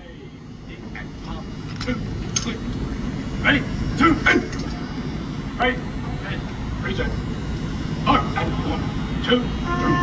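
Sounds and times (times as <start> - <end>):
steady low crowd rumble: 0.0 - 10.0.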